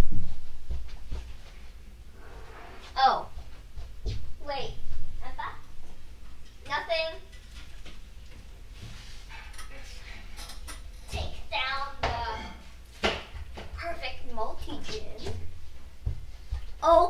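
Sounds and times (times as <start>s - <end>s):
child speaking indistinctly: 4.4s - 5.6s, 6.7s - 7.2s, 13.8s - 15.4s.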